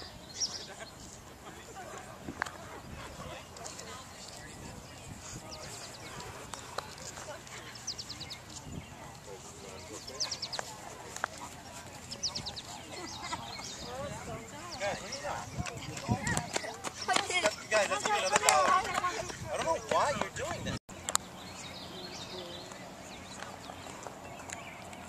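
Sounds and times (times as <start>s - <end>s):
people's voices: 0.0s - 25.0s.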